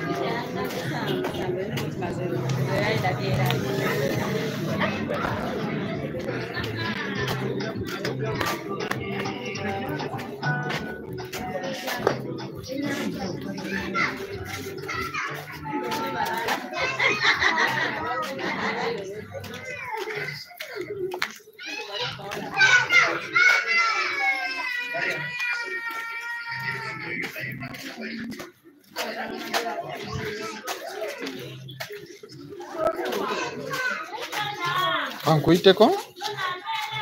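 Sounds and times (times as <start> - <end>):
children calling out and playing: 0.0 - 37.0
indistinct chatter of voices: 0.0 - 37.0.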